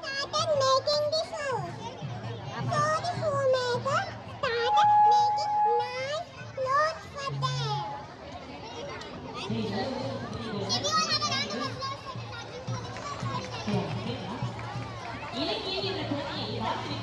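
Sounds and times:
children calling and chattering: 0.0s - 17.0s.

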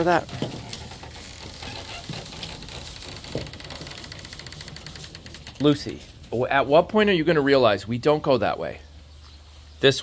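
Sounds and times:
hooves pattering through hay: 0.0s - 10.0s.

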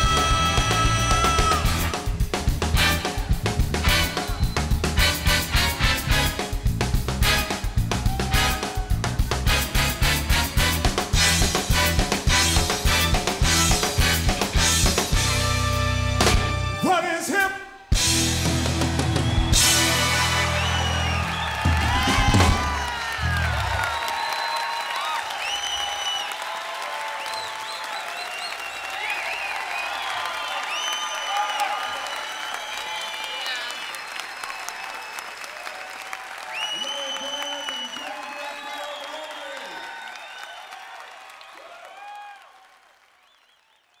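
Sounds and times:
drum and cymbal hits: 0.0s - 16.8s, 17.9s - 20.7s
audience applauding and cheering: 0.0s - 17.2s, 17.9s - 44.0s
rock band closing chord: 4.9s - 16.8s, 18.0s - 23.8s.

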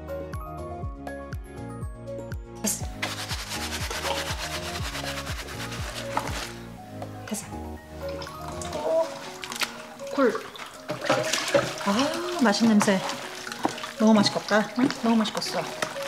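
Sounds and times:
background music with beat: 0.0s - 11.7s
gloved hands rubbing cabbage: 3.0s - 6.6s.

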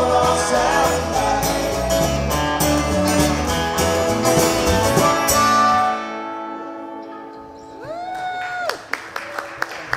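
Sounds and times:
audience whoop: 7.8s - 9.9s
audience clapping: 8.0s - 9.9s.

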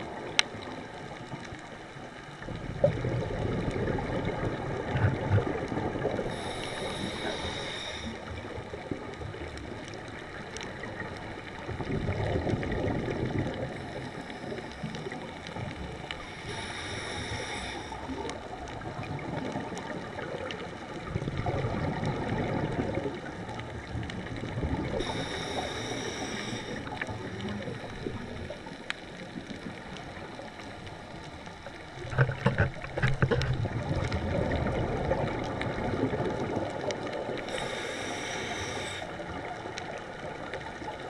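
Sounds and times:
exhaled bubbles rumbling: 0.0s - 41.0s
underwater wash: 0.0s - 41.0s
regulator hissing inhale: 6.2s - 8.6s, 13.7s - 15.2s, 16.0s - 18.3s, 24.9s - 28.6s, 37.4s - 39.4s.

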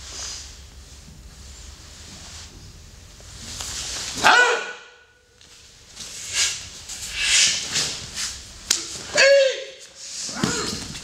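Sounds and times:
martial arts shout: 4.1s - 5.2s, 8.8s - 10.8s.

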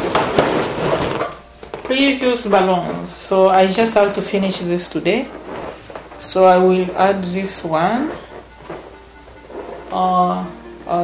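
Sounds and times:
rubbing and light knocks: 4.9s - 7.4s.

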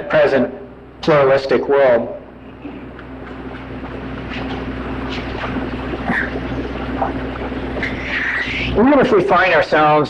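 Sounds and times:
mains hum and hiss: 0.0s - 10.0s.

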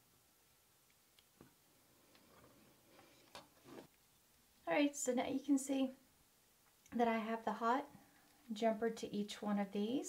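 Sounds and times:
small clicks and rustles of handling: 0.8s - 4.4s.

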